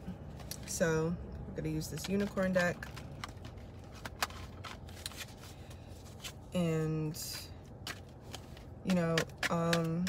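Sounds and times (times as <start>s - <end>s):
cards snapping and shuffling: 2.0s - 6.4s, 7.8s - 10.0s.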